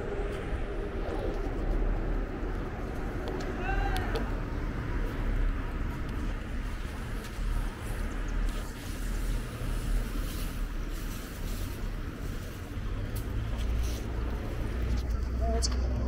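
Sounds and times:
low rumble: 0.0 - 16.0
traffic hum: 0.0 - 16.0.

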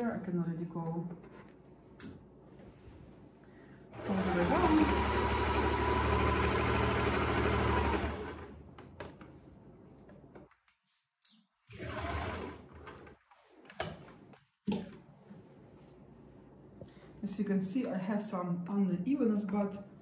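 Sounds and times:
sewing machine running: 3.9 - 8.6, 11.7 - 13.0.

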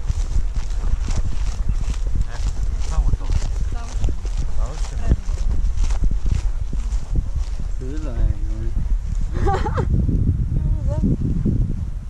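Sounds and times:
footsteps through grass: 0.0 - 9.7
wind on microphone: 0.0 - 12.0.

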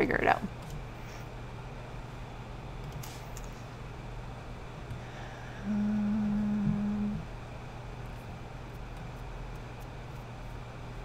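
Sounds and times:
faint electrical hum: 0.0 - 11.0
woman humming: 5.4 - 7.4.

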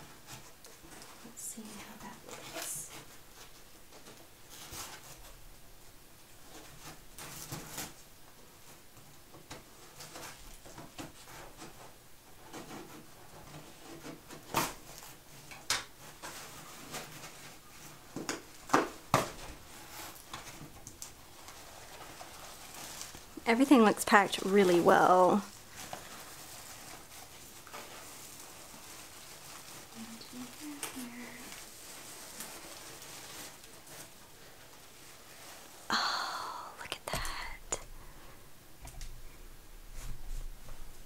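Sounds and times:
cardboard box rustling and scraping: 24.1 - 35.7.

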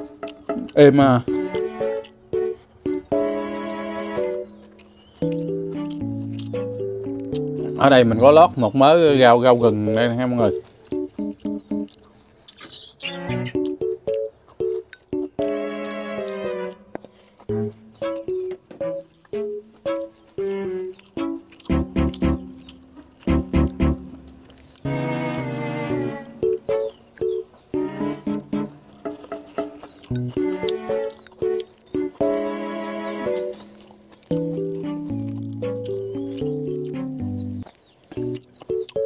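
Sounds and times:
plucked melody music: 0.0 - 12.0, 13.0 - 39.0.

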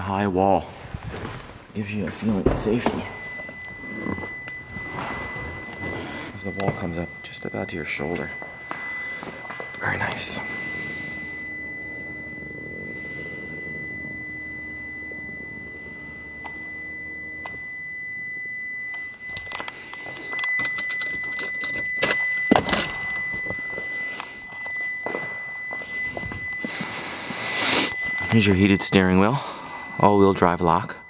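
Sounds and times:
faint high-pitched tone: 1.8 - 31.0.

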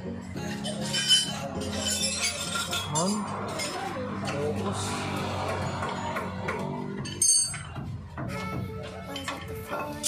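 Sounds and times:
wrench clinking on metal: 0.6 - 3.8, 7.0 - 7.7.

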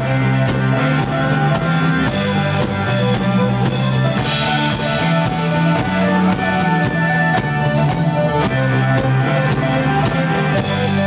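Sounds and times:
cymbals: 0.0 - 11.0
electric bass low notes: 0.0 - 11.0
rock band playing live: 0.0 - 11.0.

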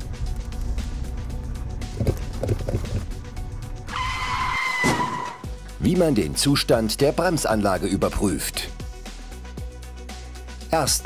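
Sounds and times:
music with low beat: 0.0 - 3.9
car brakes squealing: 3.9 - 5.5.

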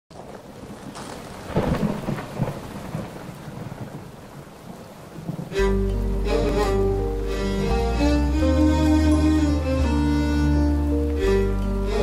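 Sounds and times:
storm rumbling: 0.1 - 12.0
bowed strings chord: 5.6 - 12.0.

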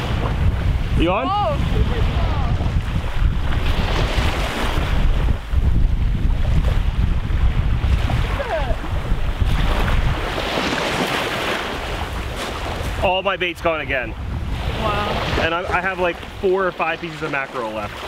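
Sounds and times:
small waves washing on shore: 0.0 - 18.0
wind buffeting microphone: 0.0 - 18.0.

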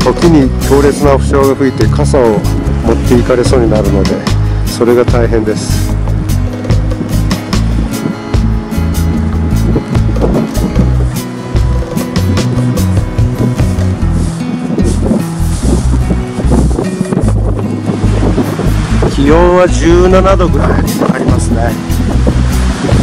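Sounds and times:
background music: 0.0 - 23.0
gusty wind buffeting microphone: 0.0 - 23.0.

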